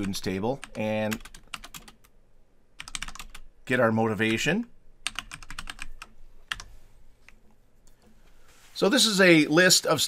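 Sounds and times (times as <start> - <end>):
computer keyboard typing: 0.0 - 2.1, 2.8 - 3.5, 4.2 - 6.7.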